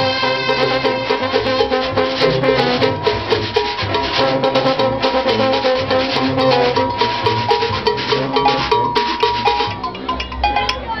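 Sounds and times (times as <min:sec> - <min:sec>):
horns holding sustained notes: 0:00.0 - 0:10.7
drums: 0:00.0 - 0:11.0
cowbells clanging: 0:00.1 - 0:11.0.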